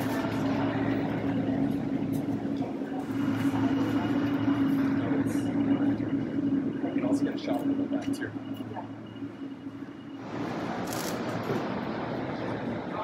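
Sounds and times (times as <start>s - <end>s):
machinery hum: 0.0s - 13.0s.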